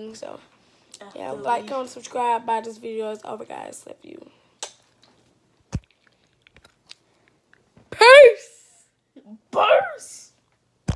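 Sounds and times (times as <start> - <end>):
girl squealing: 8.0 - 8.6.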